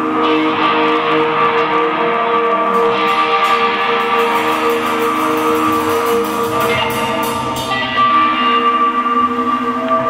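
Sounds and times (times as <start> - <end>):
electric guitar chords ringing: 0.0 - 10.0
live rock band playing: 0.0 - 10.0.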